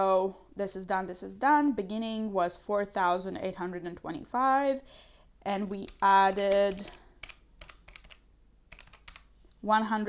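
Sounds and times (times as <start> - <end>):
calculator keys clicking: 5.8 - 9.3.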